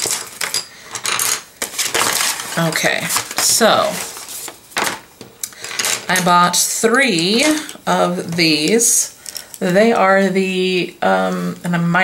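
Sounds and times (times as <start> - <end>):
packaging rustling: 0.0 - 6.2
pencils clicking and clattering: 0.0 - 10.2.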